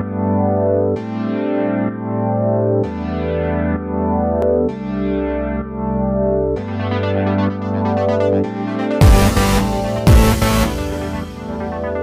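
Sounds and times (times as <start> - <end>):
sustained music chords: 8.2 - 12.0.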